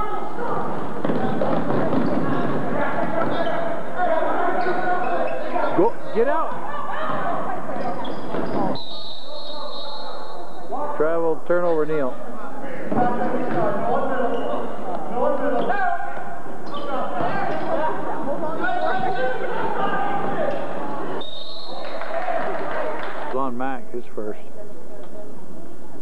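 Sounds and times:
voices of players and spectators: 0.0s - 26.0s.

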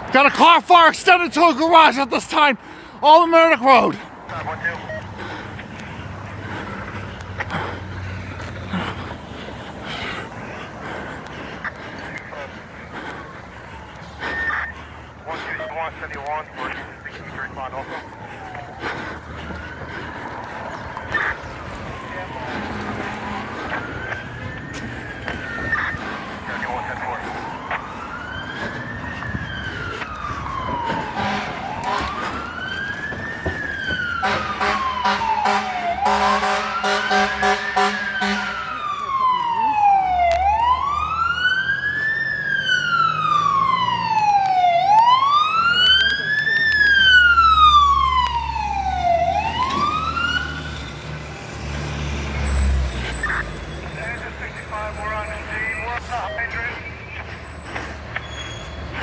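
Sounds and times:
fire engine siren wailing: 0.0s - 59.0s
diesel engine rumble: 1.4s - 59.0s
horn blast: 31.2s - 32.2s, 34.2s - 38.7s.

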